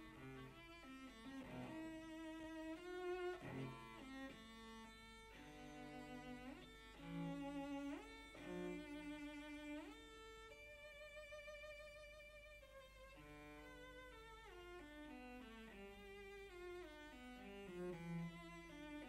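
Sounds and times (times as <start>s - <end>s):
cello playing slow melody: 0.0s - 19.0s.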